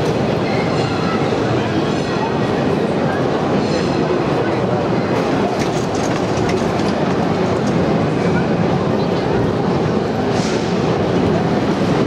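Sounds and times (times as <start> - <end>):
rumble of cable car wheels: 0.0 - 12.0.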